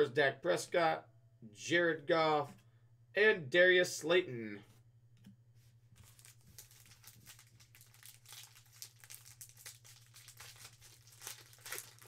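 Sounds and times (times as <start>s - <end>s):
low electrical hum: 0.0s - 12.0s
foil wrapper crinkling and tearing: 6.0s - 12.0s.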